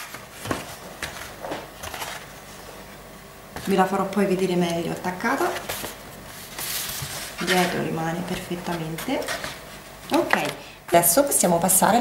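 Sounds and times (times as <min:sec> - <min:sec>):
paper rustling: 0:00.0 - 0:02.8, 0:05.4 - 0:10.6.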